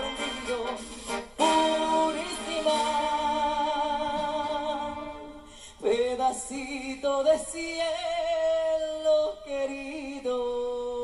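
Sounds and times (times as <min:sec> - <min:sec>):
brass chords: 0:00.0 - 0:05.5.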